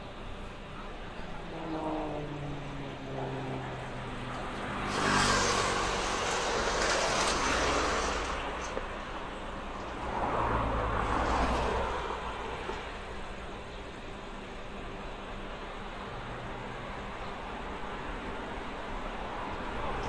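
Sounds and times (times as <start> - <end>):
propeller aircraft flying past: 0.7 - 8.8.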